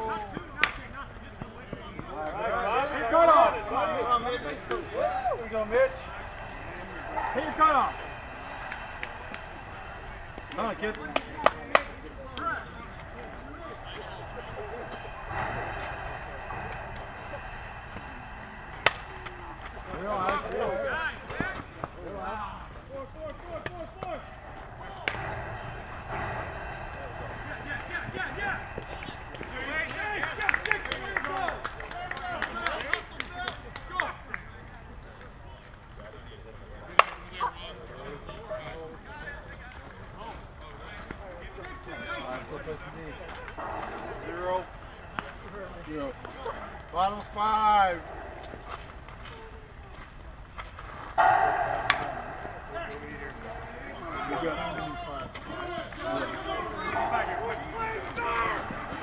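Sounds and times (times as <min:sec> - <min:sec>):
outdoor ambience: 0:00.0 - 0:59.0
players talking and calling out: 0:00.0 - 0:59.0.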